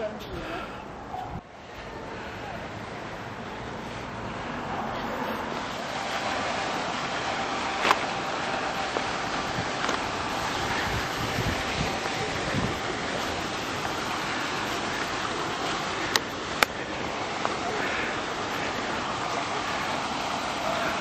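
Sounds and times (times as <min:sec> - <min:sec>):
rushing background noise: 0:00.0 - 0:21.0.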